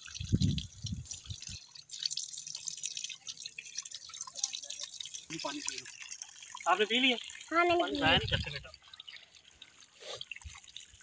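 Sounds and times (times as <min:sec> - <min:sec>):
water splashing from tap: 0:00.0 - 0:11.0.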